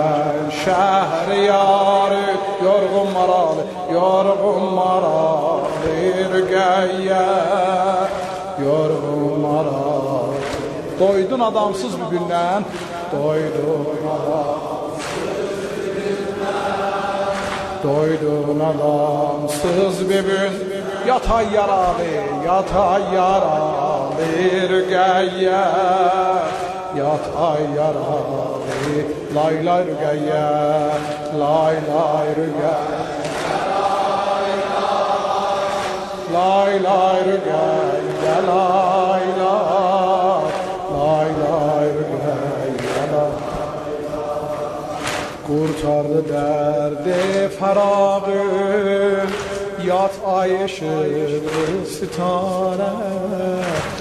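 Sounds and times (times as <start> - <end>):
man singing a slow lament: 0.0 - 54.0.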